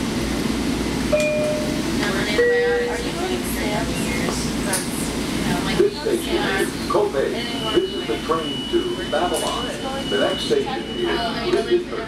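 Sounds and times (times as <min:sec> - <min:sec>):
low steady train rumble: 0:00.0 - 0:12.0
people talking: 0:01.2 - 0:12.0.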